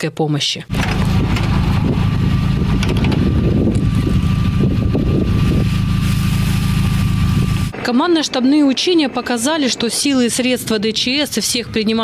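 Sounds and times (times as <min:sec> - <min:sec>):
van engine idling: 0:00.7 - 0:12.0.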